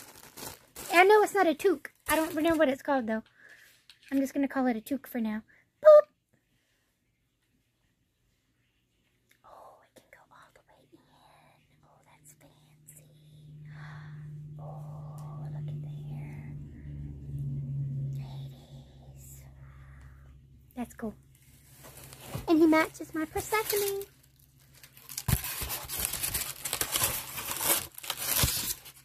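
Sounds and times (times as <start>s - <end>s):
low steady hum: 5.4s - 29.0s
woman whispering: 9.4s - 16.9s, 18.0s - 21.2s.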